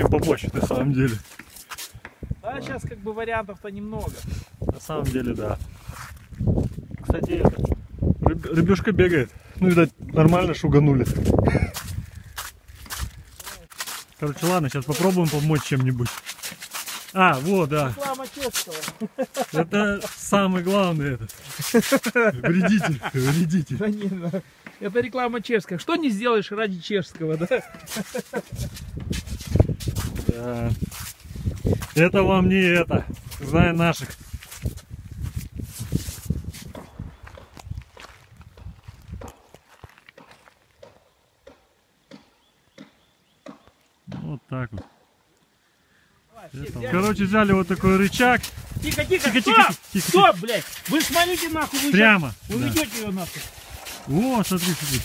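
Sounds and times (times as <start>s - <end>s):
footsteps on snowy ice: 0.2s - 2.2s, 3.9s - 7.3s, 9.6s - 25.5s, 27.2s - 40.9s, 46.6s - 55.0s.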